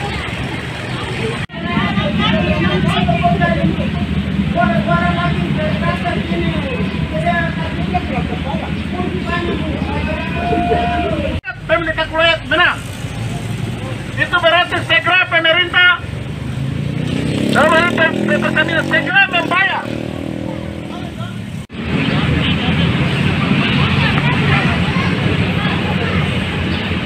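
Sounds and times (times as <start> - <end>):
indistinct voices: 0.0 - 27.0
motor vehicle passing: 0.0 - 27.0.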